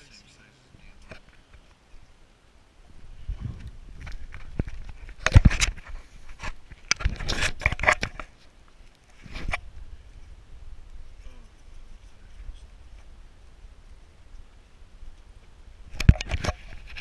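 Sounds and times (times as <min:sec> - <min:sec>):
rustling and scraping of gear: 0:02.9 - 0:09.8, 0:16.0 - 0:17.0.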